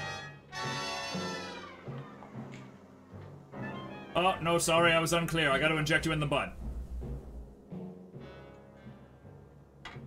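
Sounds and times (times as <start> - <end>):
background music low notes: 0.0 - 10.0.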